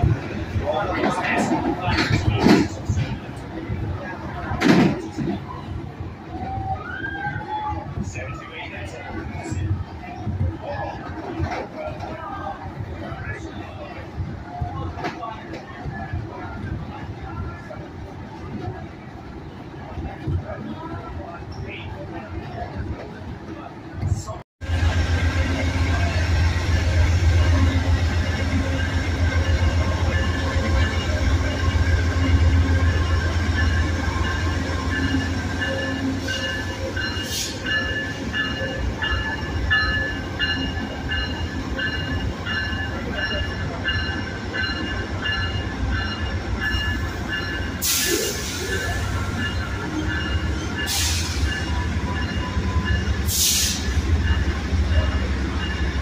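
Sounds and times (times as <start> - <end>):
hiss bursts: 53.3 - 54.0.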